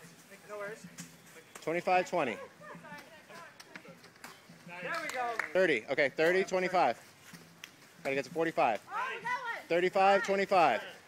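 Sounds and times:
people talking and calling out: 0.0s - 11.0s
man talking: 0.3s - 2.5s, 4.6s - 7.1s, 8.0s - 11.0s.

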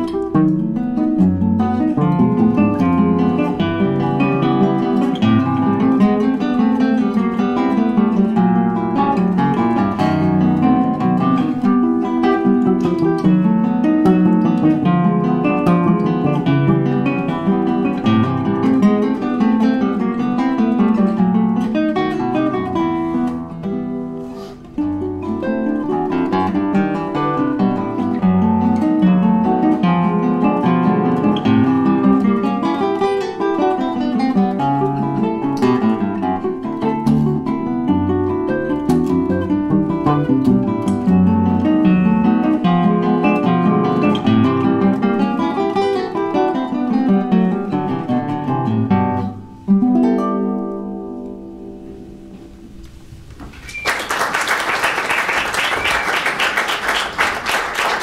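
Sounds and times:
classical guitars playing: 0.0s - 58.0s.

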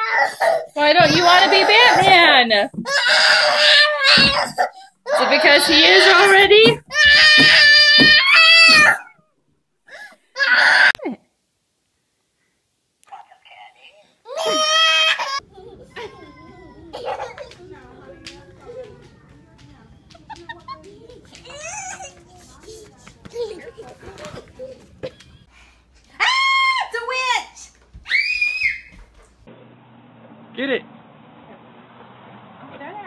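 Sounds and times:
baby crying: 0.0s - 9.2s, 9.9s - 11.0s, 14.3s - 15.4s
toddler squealing: 2.9s - 9.1s, 28.1s - 29.0s.

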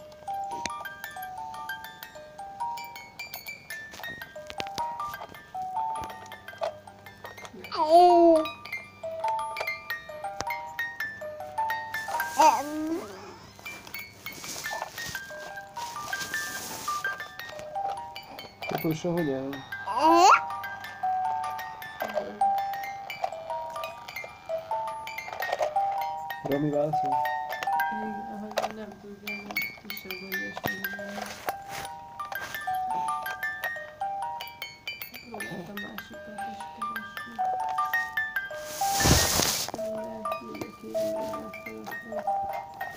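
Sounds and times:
baby vocal sound: 7.7s - 8.5s, 12.2s - 13.5s, 19.8s - 20.6s.

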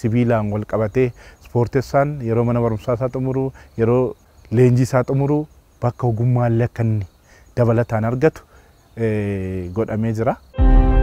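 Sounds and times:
man speaking: 0.0s - 10.4s.

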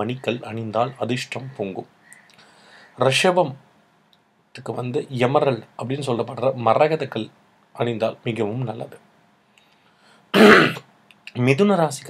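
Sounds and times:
man clearing his throat: 10.4s - 10.9s.

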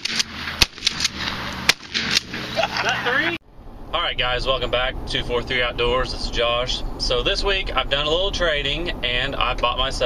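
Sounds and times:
gunshots: 0.0s - 2.6s
man's voice: 4.0s - 10.0s.

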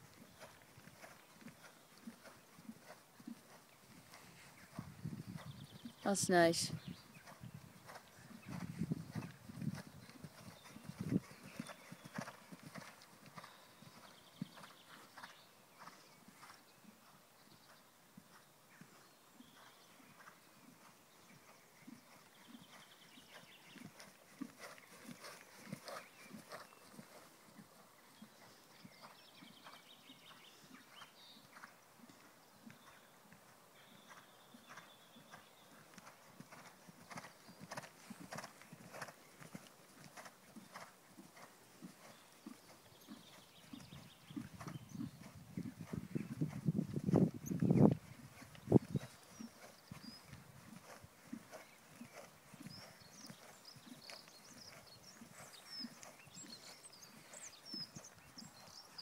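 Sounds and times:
hooves clip-clopping: 0.0s - 59.0s.

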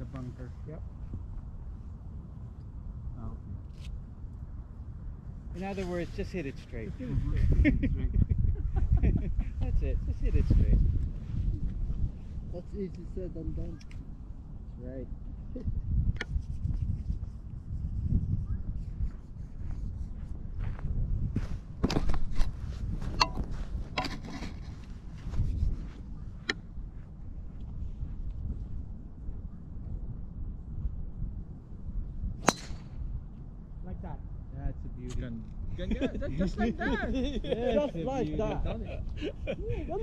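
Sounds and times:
wind rumbling on microphone: 0.0s - 40.0s
golf club striking ball: 32.4s - 33.0s.

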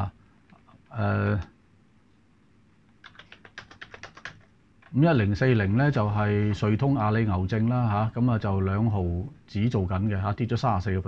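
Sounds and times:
computer keyboard typing: 3.0s - 4.5s.

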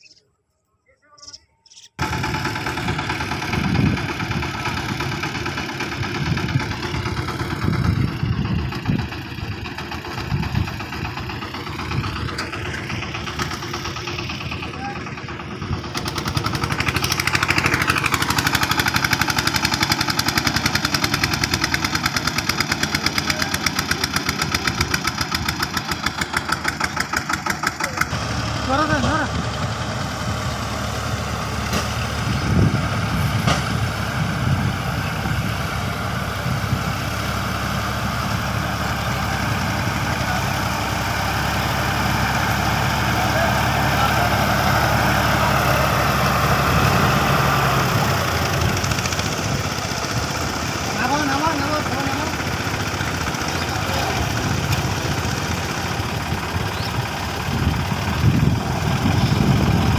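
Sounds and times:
voices: 0.0s - 59.9s
diesel engine running: 1.2s - 59.9s.

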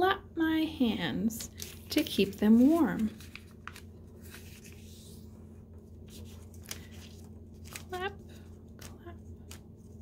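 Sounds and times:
paper rustling and crinkling: 1.4s - 10.0s.

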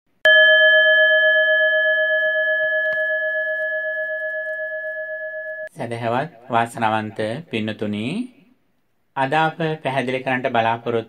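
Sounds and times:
bell ringing: 0.3s - 5.7s
man speaking: 5.7s - 8.4s.

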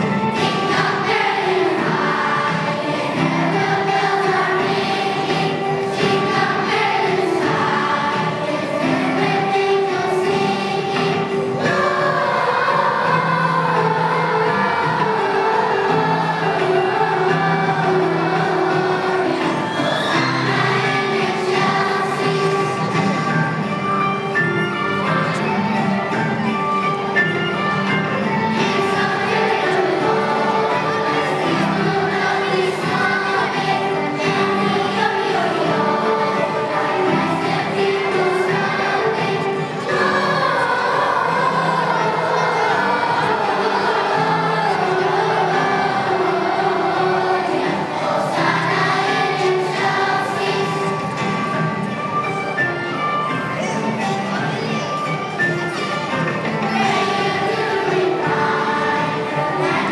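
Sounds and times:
children's choir singing: 0.0s - 59.9s.

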